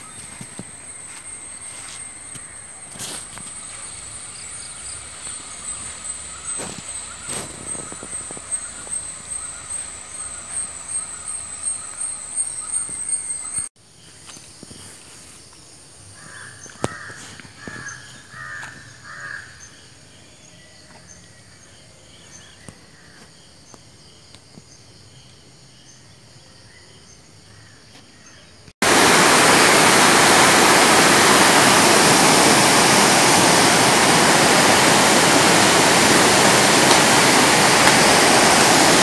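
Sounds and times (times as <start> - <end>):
crow cawing: 16.2 - 19.6.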